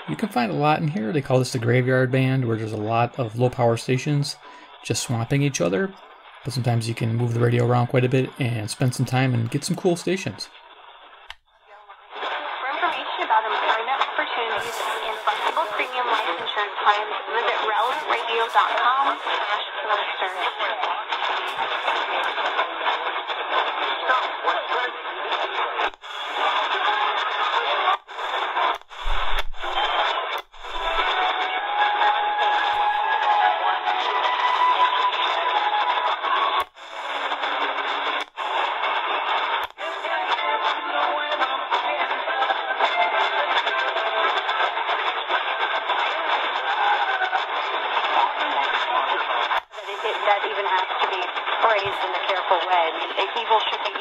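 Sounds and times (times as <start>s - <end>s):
radio speech: 0.0s - 10.5s, 12.1s - 54.0s
radio music: 0.0s - 54.0s.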